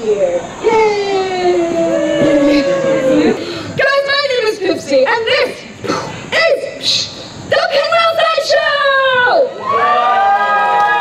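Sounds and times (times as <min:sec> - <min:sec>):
several voices cheering: 0:08.9 - 0:11.0.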